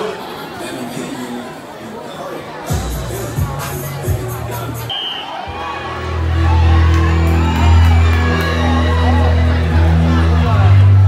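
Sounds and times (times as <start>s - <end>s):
music with heavy bass: 2.7s - 4.9s, 6.1s - 11.0s
crowd cheering: 3.8s - 11.0s.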